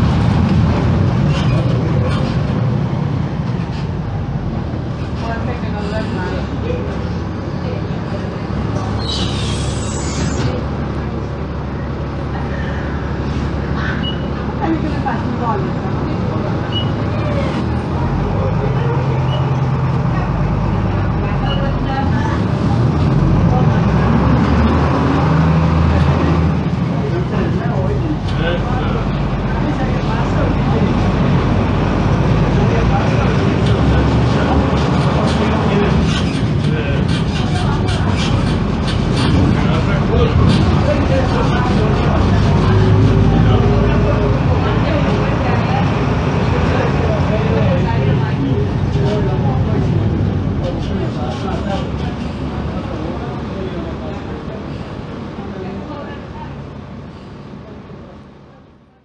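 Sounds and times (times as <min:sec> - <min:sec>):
diesel bus engine idling: 0:00.0 - 0:59.0.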